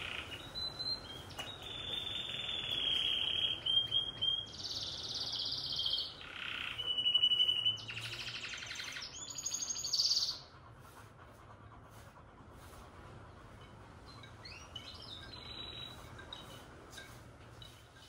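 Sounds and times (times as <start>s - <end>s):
bird whistles: 0.0s - 10.4s
buzzy rattling bird trills: 0.0s - 10.6s, 12.6s - 18.0s.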